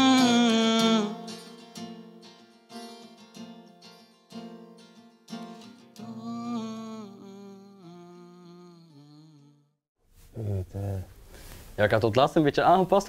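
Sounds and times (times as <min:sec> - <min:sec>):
soft wordless singing: 0:00.0 - 0:01.4, 0:06.0 - 0:09.6
fingerpicked acoustic guitar: 0:00.0 - 0:08.5.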